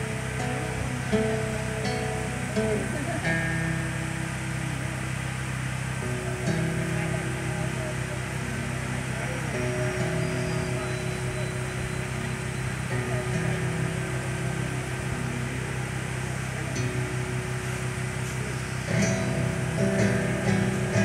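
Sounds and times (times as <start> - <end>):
acoustic guitar playing: 0.0 - 21.0
steady low hum: 0.0 - 21.0.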